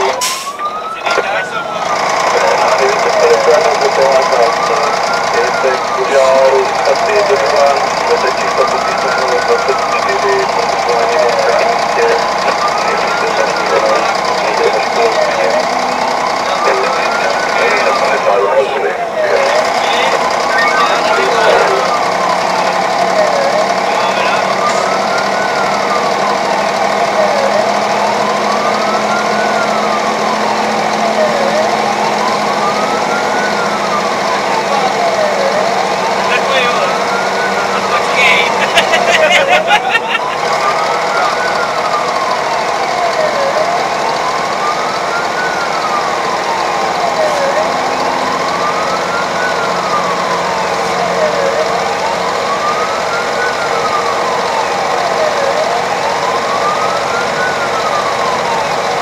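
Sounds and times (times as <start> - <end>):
fire engine siren wailing: 0.0 - 59.0
truck engine running: 0.0 - 59.0.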